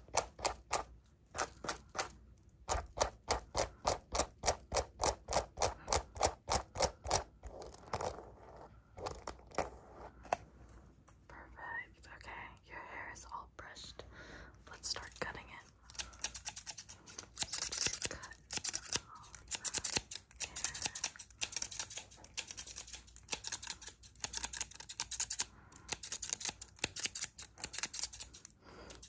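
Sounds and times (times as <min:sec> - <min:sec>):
soft irregular scratching: 0:00.6 - 0:14.0, 0:14.8 - 0:29.0.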